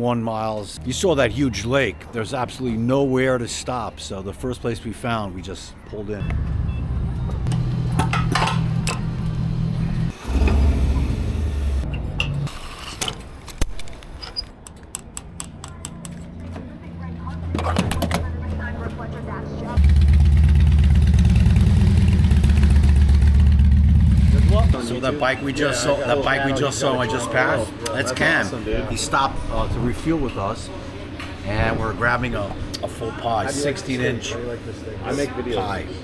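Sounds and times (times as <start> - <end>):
motorcycle engines running: 19.8 - 24.8.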